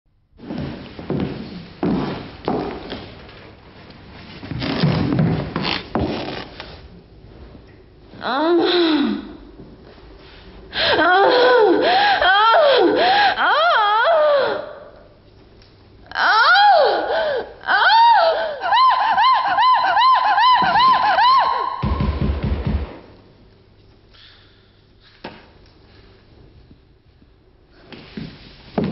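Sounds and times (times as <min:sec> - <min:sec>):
heeled footsteps on wooden floor: 0:00.4 - 0:03.2, 0:27.9 - 0:28.9.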